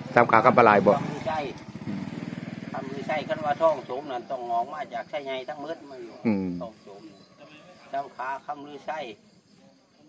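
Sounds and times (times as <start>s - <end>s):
motorcycle engine running: 0.0s - 5.1s
man speaking: 2.8s - 6.8s.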